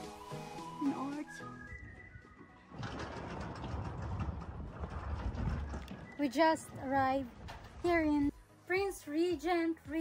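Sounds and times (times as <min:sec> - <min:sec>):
wind buffeting microphone: 0:02.7 - 0:08.3.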